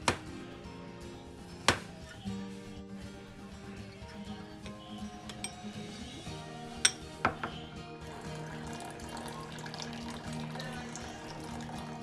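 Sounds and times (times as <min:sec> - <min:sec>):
background music: 0:00.0 - 0:12.0
spoon clinking on ceramic bowl: 0:04.1 - 0:05.9, 0:06.8 - 0:07.6
tea trickling into cup: 0:08.1 - 0:12.0.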